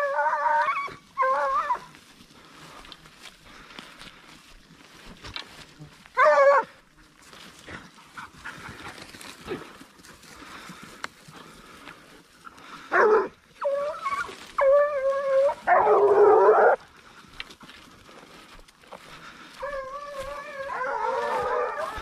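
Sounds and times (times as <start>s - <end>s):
hunting hounds baying: 0.0s - 3.0s, 5.0s - 22.0s.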